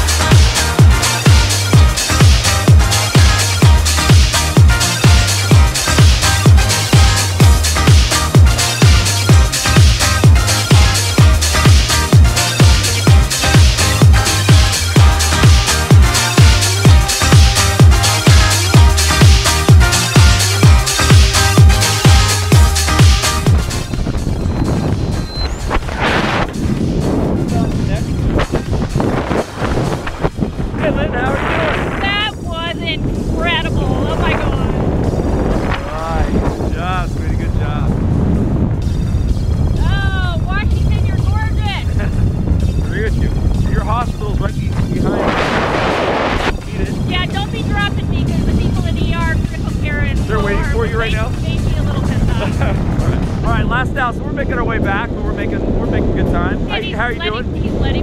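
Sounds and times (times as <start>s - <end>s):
electronic dance music: 0.0s - 24.0s, 50.1s - 52.6s, 56.7s - 57.4s
wind rushing over microphone: 0.0s - 58.0s
voices: 30.8s - 34.8s, 35.6s - 37.9s, 39.8s - 42.0s, 46.5s - 58.0s.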